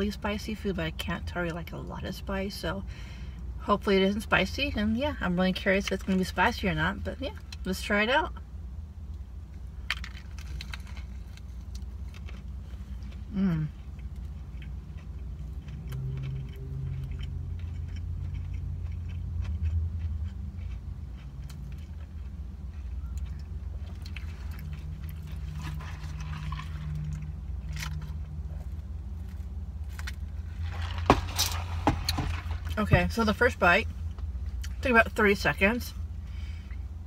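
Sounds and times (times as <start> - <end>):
low rumble inside car: 0.0 - 37.0
close-up chewing: 9.9 - 32.8.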